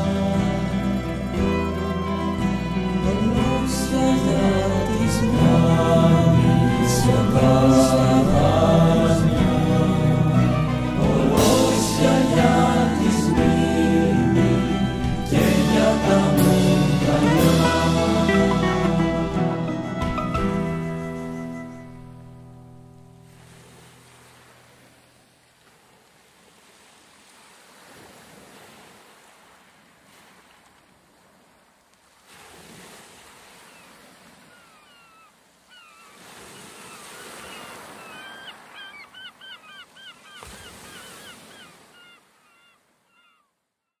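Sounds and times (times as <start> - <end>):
held music notes: 0.0 - 23.2
small sea waves washing in: 23.2 - 43.0
bird calling in hooked notes: 34.5 - 43.5.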